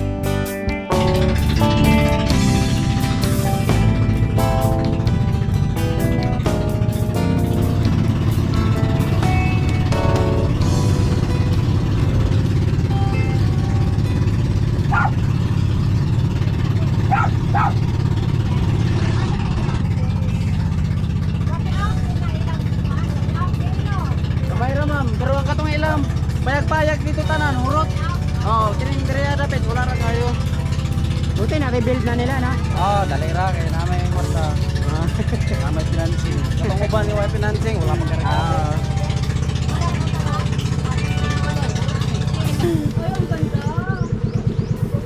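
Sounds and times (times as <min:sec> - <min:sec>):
background music: 0:00.0 - 0:45.0
boat engine droning: 0:00.0 - 0:45.0
voices talking: 0:11.2 - 0:45.0.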